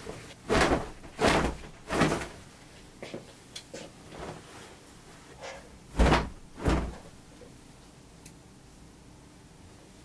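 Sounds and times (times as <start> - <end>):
clothes flapping: 0.0 - 2.5, 5.9 - 7.3
clothes rustling: 0.0 - 7.4.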